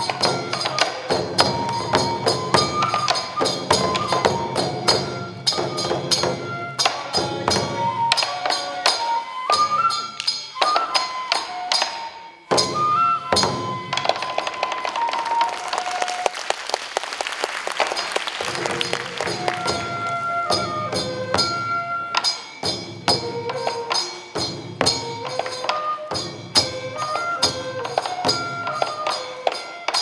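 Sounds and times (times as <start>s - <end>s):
flute melody: 0.0s - 16.8s, 17.9s - 30.0s
audience applause: 14.6s - 20.4s
drum strokes: 17.6s - 30.0s.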